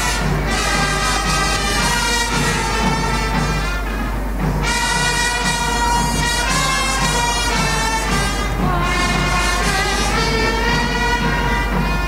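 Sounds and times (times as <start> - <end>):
brass band playing a march: 0.0 - 12.0
steady drum beat: 0.0 - 12.0.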